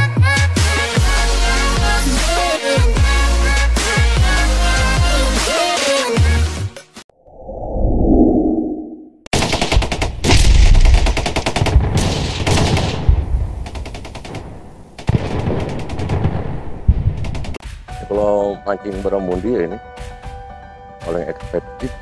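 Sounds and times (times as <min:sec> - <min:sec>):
whoosh: 0:07.2 - 0:09.2
machine-gun fire: 0:09.3 - 0:17.6.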